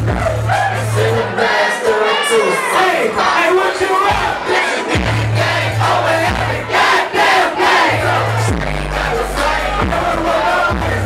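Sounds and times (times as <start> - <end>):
deep bass notes: 0.0 - 1.4, 4.0 - 6.9, 7.6 - 11.0
crowd shouting and singing: 0.0 - 11.0
loud hip hop track: 0.0 - 11.0.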